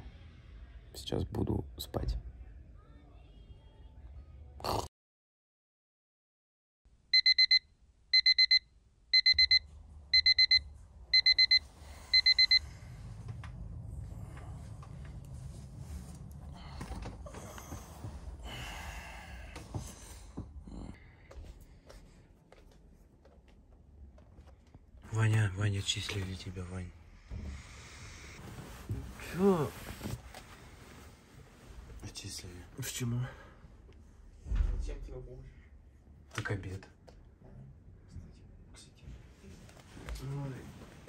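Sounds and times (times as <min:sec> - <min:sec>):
digital alarm beeping: 0:07.2 - 0:07.6, 0:08.2 - 0:08.6, 0:09.2 - 0:09.6, 0:10.2 - 0:12.6
duvet rustling: 0:28.4 - 0:32.5.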